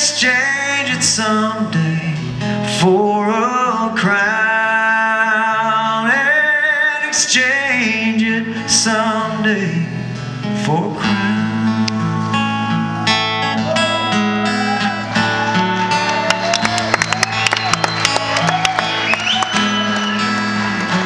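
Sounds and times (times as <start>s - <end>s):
acoustic guitar melody: 0.0s - 21.0s.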